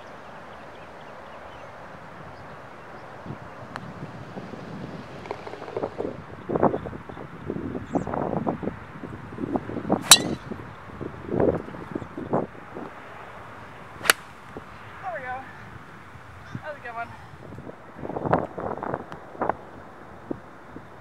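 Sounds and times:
wind gusting across microphone: 0:01.8 - 0:21.0
golf club striking ball: 0:10.0 - 0:10.6, 0:14.0 - 0:14.5.

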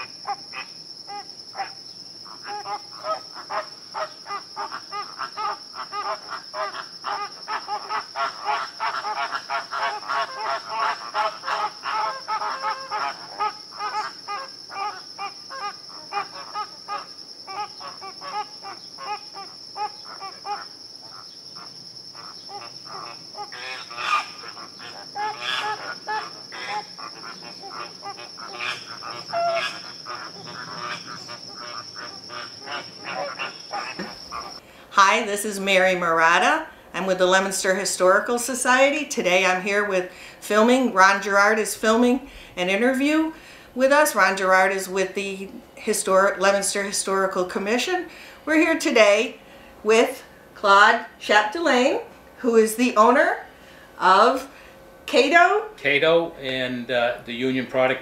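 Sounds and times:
flamingos honking: 0:00.0 - 0:42.0.

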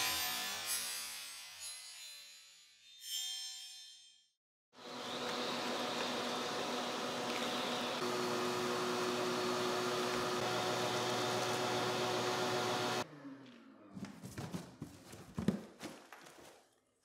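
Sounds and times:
shop vacuum running: 0:04.8 - 0:13.0.

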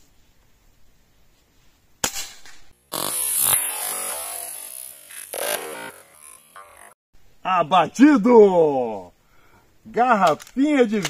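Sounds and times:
electronic music: 0:02.9 - 0:07.0.

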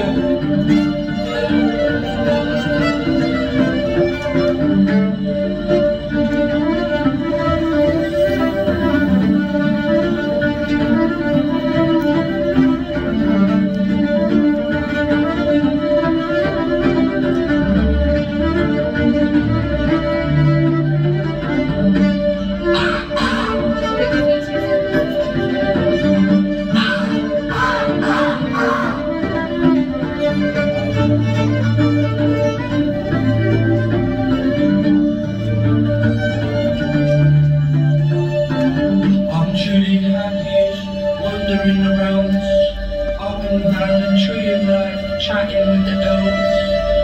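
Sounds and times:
fiddle playing a tune: 0:00.0 - 0:47.0
steady held drone tone: 0:22.6 - 0:24.1, 0:26.6 - 0:29.4.

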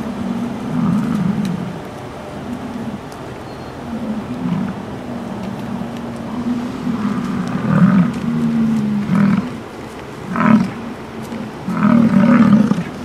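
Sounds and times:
bison bellowing: 0:00.0 - 0:13.0.

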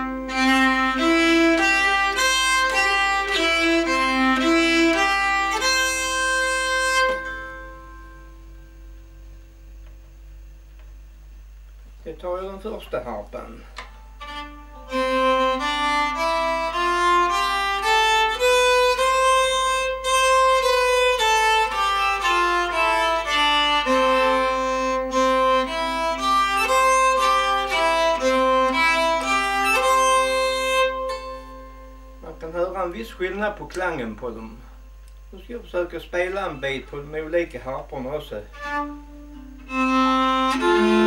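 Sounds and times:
keyed fiddle bowed melody: 0:00.0 - 0:08.7, 0:13.8 - 0:33.5, 0:38.3 - 0:41.0.

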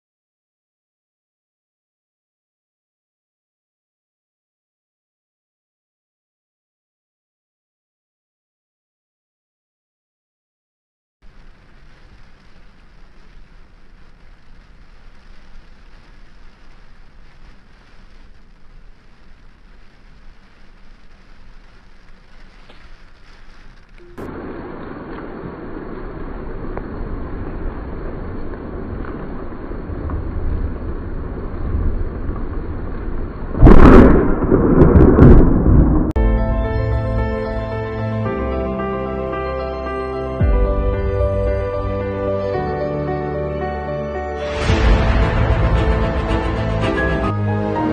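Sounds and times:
steady rain: 0:11.2 - 0:39.8, 0:40.4 - 0:47.9
loud thunderclap rumbling: 0:24.2 - 0:38.0, 0:44.4 - 0:47.9.

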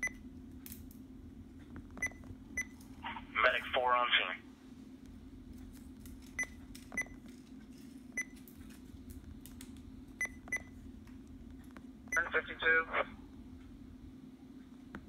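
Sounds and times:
steady low hum: 0:00.0 - 0:15.0
scanner key beeps: 0:12.1 - 0:12.6.

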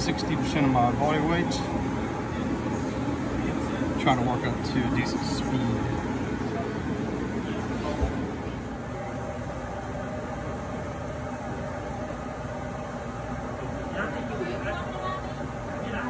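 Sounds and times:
treadmill air blower drone: 0:00.0 - 0:16.0
treadmill belt motor: 0:00.0 - 0:16.0.

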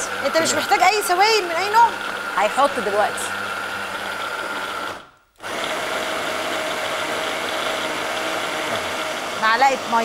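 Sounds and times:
hand blender motor running: 0:00.0 - 0:10.0.

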